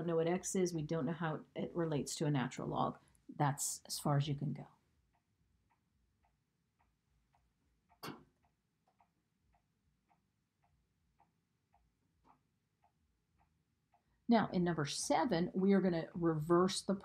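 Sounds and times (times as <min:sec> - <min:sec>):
faint regular ticking: 0:04.6 - 0:15.7.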